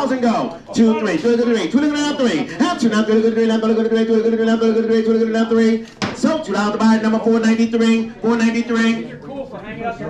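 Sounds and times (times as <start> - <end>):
auctioneer chanting bids: 0.0 - 9.1.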